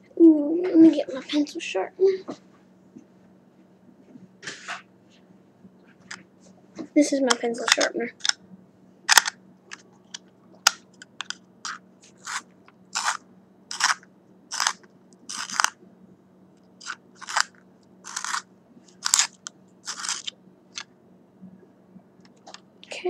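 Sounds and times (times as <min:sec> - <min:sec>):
pencil sharpener scraping: 0:11.6 - 0:15.7, 0:16.8 - 0:20.3.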